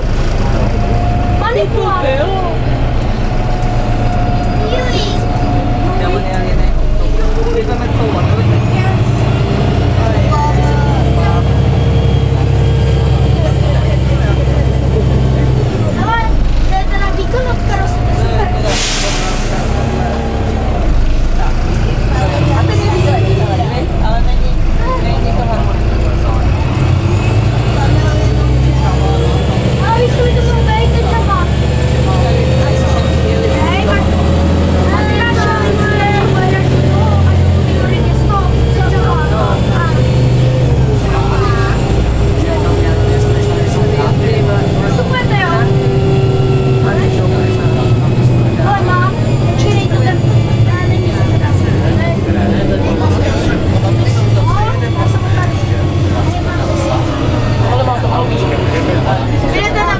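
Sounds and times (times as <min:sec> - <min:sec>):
bus engine drone with whine: 0:00.0 - 0:59.9
passengers talking: 0:00.0 - 0:59.9.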